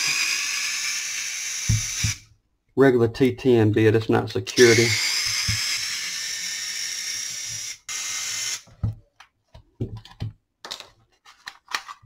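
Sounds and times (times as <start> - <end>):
electric screwdriver whining: 0.0 - 2.2, 4.6 - 8.7.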